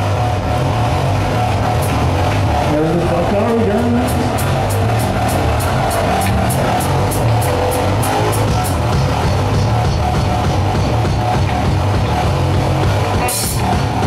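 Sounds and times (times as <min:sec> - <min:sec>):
heavy metal band playing live: 0:00.0 - 0:14.0.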